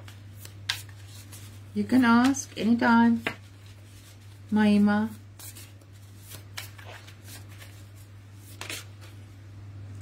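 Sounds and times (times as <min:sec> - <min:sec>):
cards being shuffled: 0:00.0 - 0:09.2
steady low hum: 0:00.0 - 0:10.0.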